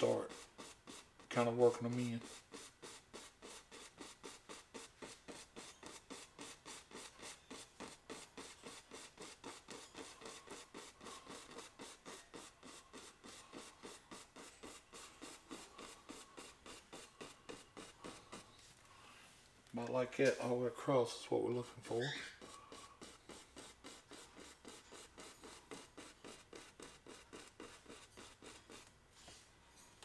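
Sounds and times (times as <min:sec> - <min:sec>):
brush strokes on canvas: 0:00.0 - 0:29.6.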